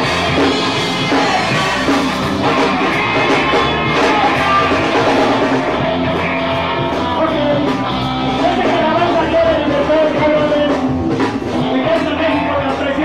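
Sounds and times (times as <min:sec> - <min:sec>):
drum kit: 0:00.0 - 0:13.0
electric guitars: 0:00.0 - 0:13.0
person singing: 0:00.0 - 0:13.0.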